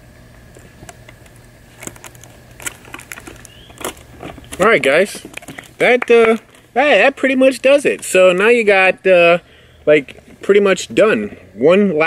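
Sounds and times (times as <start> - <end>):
tape and foil box crinkling: 0.5 - 8.8.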